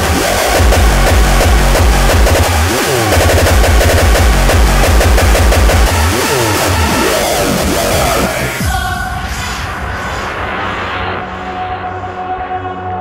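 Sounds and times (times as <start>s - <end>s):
fast heavy kick drum: 0.0s - 8.3s
hardcore electronic dance music: 0.0s - 12.7s.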